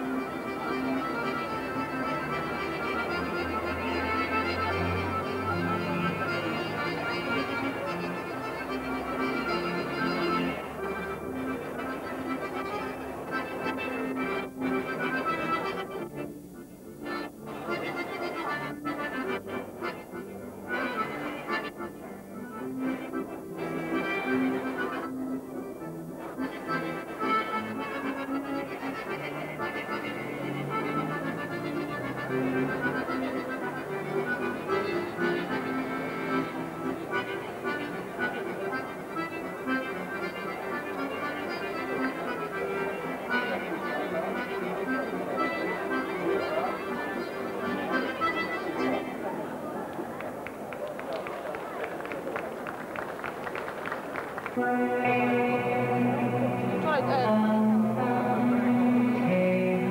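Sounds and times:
violin: 0.0 - 50.0
accordion: 0.0 - 59.9.

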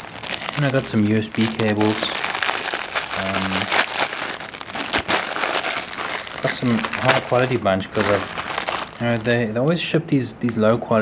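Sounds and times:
plastic bag crinkling: 0.0 - 9.5.

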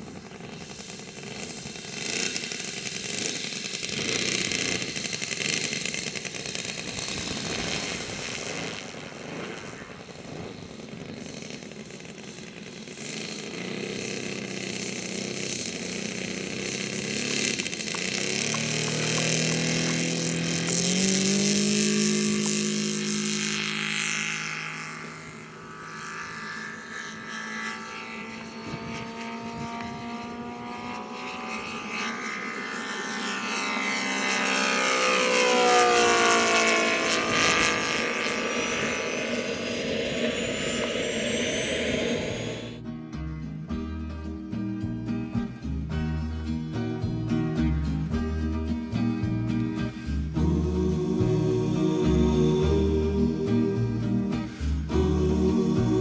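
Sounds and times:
steady high hiss of jet exhaust: 0.0 - 24.0, 36.4 - 42.8, 49.5 - 56.0
model plane engine droning: 0.0 - 56.0.

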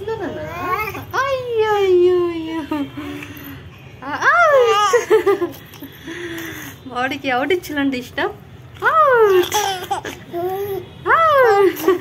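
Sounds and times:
baby laughing: 9.3 - 10.9.

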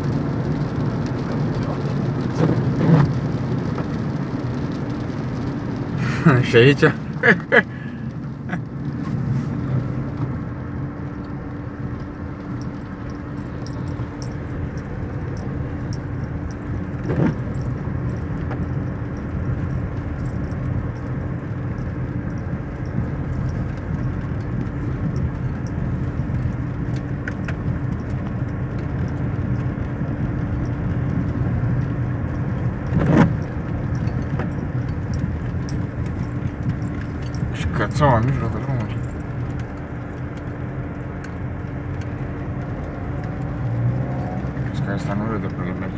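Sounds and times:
car engine and road noise: 0.0 - 45.9.

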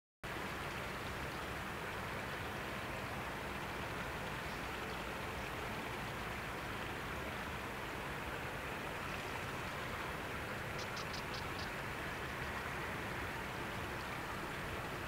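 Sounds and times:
steady ambient hiss: 0.3 - 15.0.

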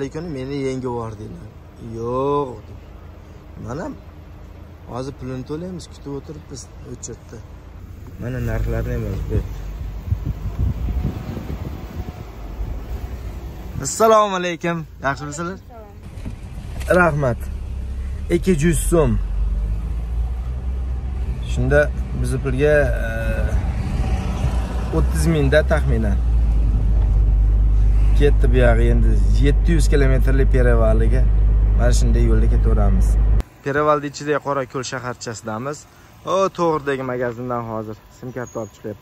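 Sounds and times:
car rolling slowly: 0.0 - 39.0
wind buffeting microphone: 9.2 - 14.0.

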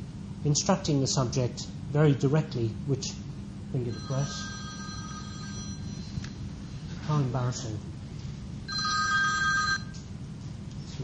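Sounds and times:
phone ringing: 3.8 - 6.2, 8.7 - 10.0.

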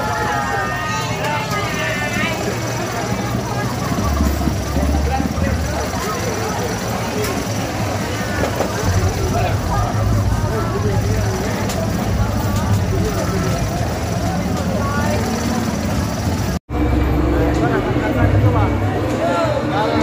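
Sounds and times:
babble of crowd voices: 0.0 - 20.0.

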